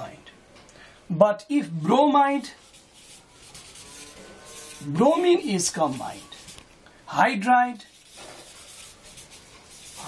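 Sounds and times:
marker pen writing on paper: 7.9s - 10.0s.

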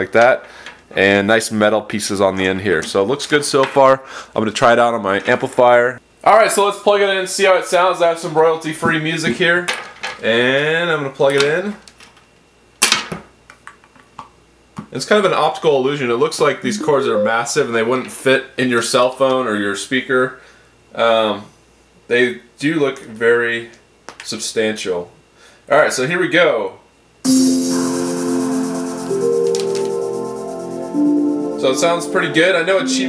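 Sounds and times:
instrumental music through small speaker: 27.3s - 33.0s.

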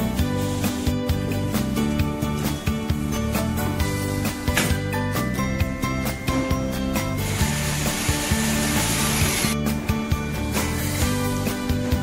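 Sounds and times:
background music with bass notes: 0.0s - 12.0s.

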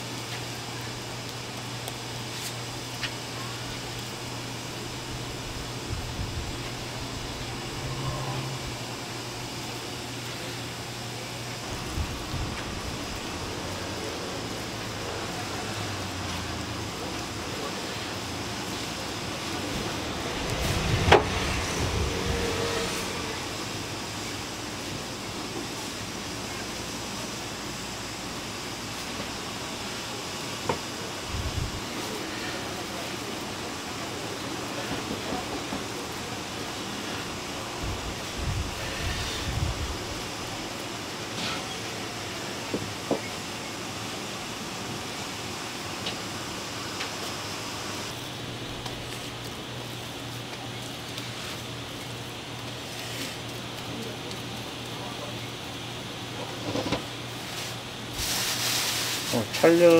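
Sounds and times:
faint voices: 0.0s - 43.4s, 49.0s - 57.1s
steady background noise: 0.0s - 59.9s.

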